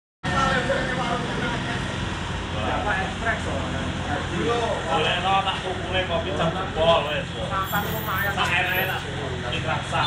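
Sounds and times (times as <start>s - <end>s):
indistinct talking: 0.2s - 10.0s
road noise: 0.2s - 10.0s
vehicle engine rumble: 0.2s - 10.0s.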